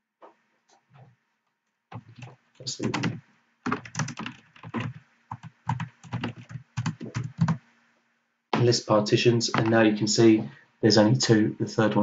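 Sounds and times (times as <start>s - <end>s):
typing on computer keyboard: 1.9s - 7.6s, 9.5s - 9.8s.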